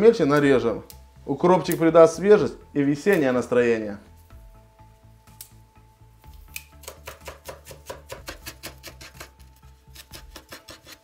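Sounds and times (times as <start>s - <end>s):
quiet background music: 0.0s - 11.0s
knife chopping on wooden board: 6.8s - 9.4s.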